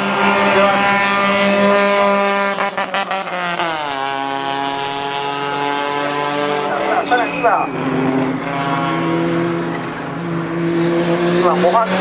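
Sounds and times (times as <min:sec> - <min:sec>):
race car engine at high revs: 0:00.0 - 0:12.0.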